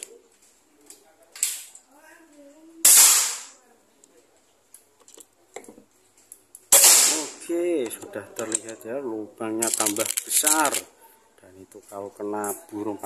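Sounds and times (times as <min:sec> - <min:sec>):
suppressed air rifle shots: 0:02.8 - 0:03.6, 0:06.7 - 0:07.4.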